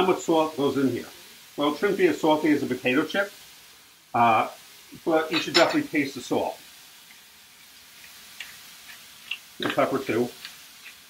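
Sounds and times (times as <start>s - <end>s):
vegetables sizzling in a pan: 0.0s - 11.0s.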